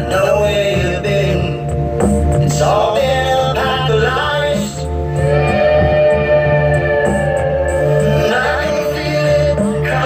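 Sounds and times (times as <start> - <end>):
low bass notes: 0.0 - 10.0
person singing gliding melody: 2.6 - 10.0.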